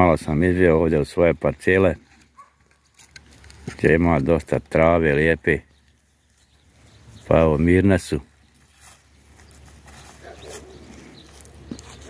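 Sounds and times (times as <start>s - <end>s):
goats tearing and crunching grass: 0.0s - 12.0s.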